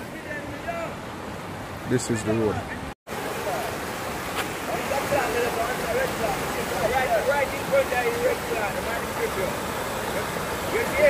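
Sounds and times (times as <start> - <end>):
river rushing over rocks: 3.1 - 11.0.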